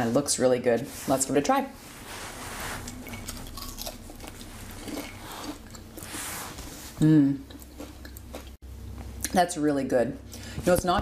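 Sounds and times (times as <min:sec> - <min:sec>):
person chewing crisp bacon: 0:02.8 - 0:06.2, 0:07.4 - 0:08.6.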